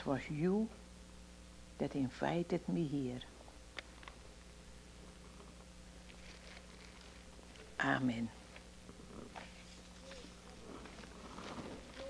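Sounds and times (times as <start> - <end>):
faint steady hum: 0.0 - 12.0
soft rustles: 5.2 - 7.8, 8.4 - 12.0.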